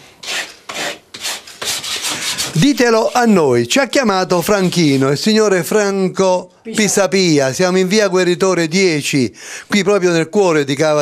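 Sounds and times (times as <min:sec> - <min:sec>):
sandpaper rubbing on wood: 0:00.2 - 0:03.4.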